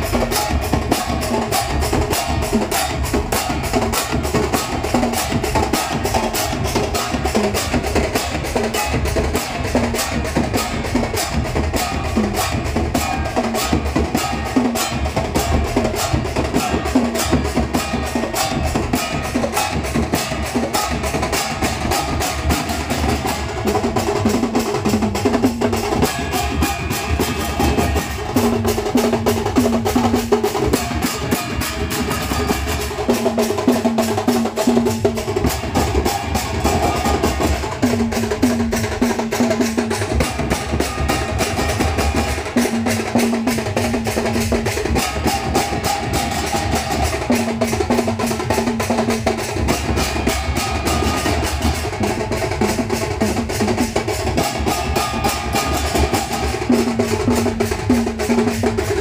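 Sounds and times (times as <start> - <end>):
bell-metal gongs beaten with sticks: 0.0 - 59.0.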